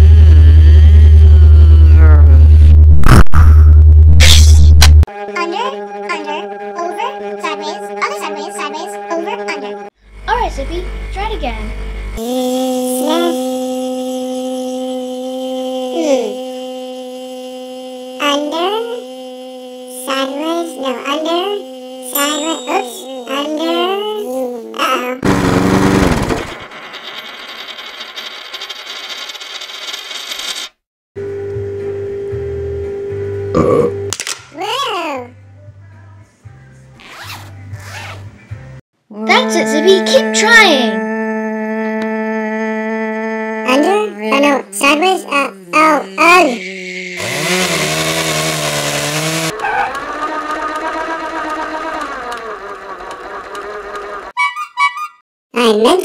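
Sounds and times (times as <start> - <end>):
low hum with held tone: 10.1 - 24.6
spinning top humming: 12.4 - 23.9, 25.2 - 30.7, 44.4 - 54.4
spinning top rasping whir: 25.2 - 30.8, 46.2 - 54.4
spinning top rattling: 25.8 - 30.8.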